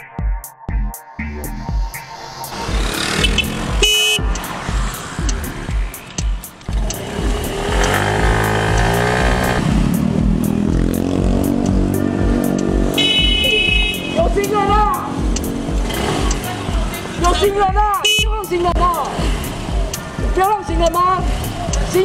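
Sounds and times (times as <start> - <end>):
background music with steady beat: 0.0 - 22.0
street traffic: 1.5 - 22.0
car horn honking: 3.2 - 4.4, 12.9 - 14.6, 18.0 - 18.4.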